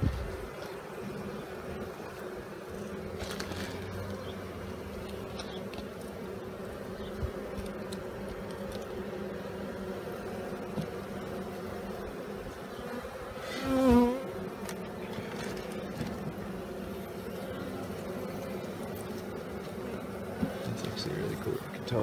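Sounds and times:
bee buzzing close by: 0:00.0 - 0:22.0
bees humming in a hive: 0:00.0 - 0:22.0.

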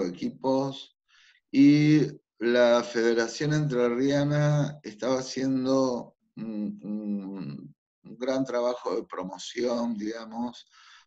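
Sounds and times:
man speaking over a video call: 0:00.0 - 0:00.9, 0:01.6 - 0:11.0.

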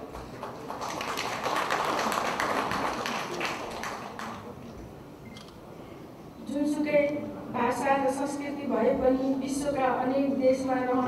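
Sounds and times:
audience applauding: 0:00.0 - 0:04.6.

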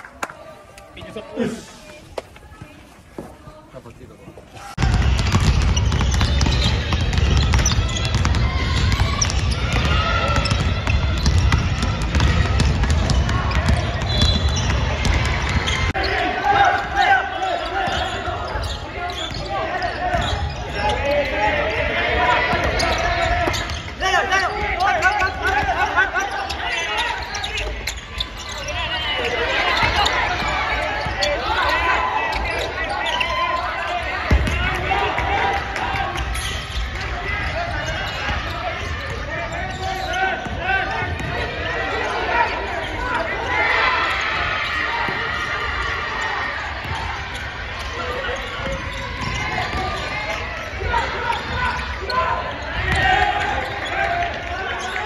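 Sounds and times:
players' voices echoing: 0:00.0 - 0:55.0
basketballs bouncing on hardwood: 0:04.8 - 0:15.9, 0:34.3 - 0:37.1, 0:40.4 - 0:41.5.

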